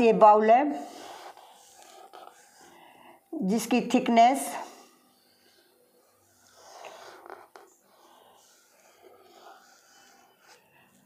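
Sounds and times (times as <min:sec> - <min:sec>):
marker rubbing on whiteboard: 0:00.8 - 0:02.7, 0:06.1 - 0:10.6.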